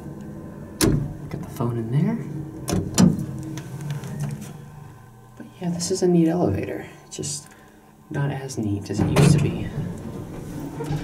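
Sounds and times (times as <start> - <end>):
hydraulic elevator humming: 0.0 - 11.0.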